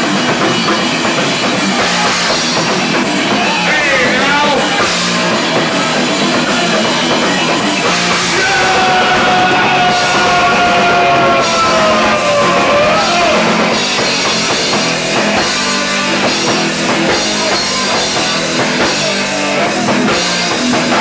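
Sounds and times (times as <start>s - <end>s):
punk band playing live: 0.0s - 21.0s.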